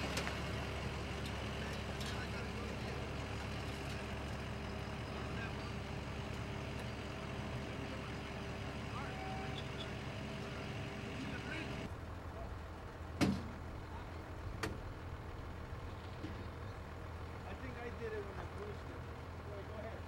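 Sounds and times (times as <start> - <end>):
truck engines running: 0.0 - 20.0
truck passing by: 0.0 - 20.0.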